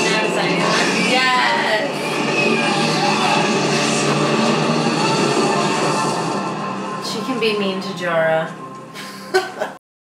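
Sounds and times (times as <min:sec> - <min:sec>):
orchestral music: 0:00.0 - 0:09.2.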